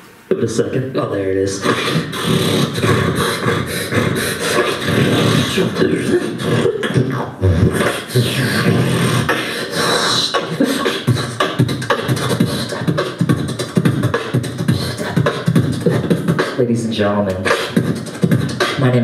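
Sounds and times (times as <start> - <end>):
beatboxing into a microphone: 0.0 - 19.0.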